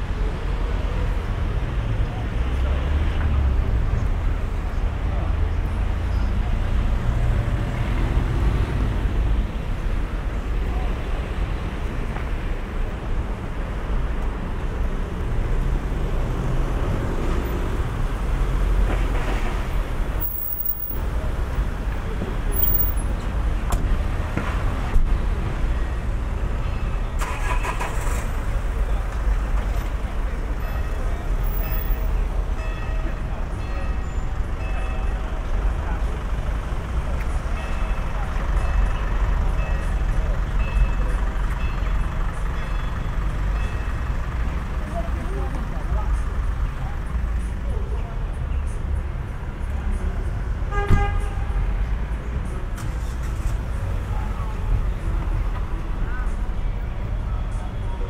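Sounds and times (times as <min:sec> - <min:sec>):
people talking in background: 0:00.0 - 0:13.0, 0:19.6 - 0:43.5, 0:44.2 - 0:50.6, 0:51.2 - 0:58.0
car traffic rumble: 0:00.0 - 0:58.0
loud passing vehicle noise: 0:01.4 - 0:10.3.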